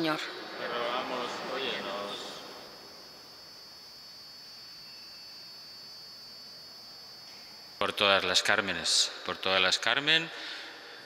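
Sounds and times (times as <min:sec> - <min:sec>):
faint high-pitched whine: 0:00.0 - 0:11.0
steady low hiss: 0:00.0 - 0:11.0.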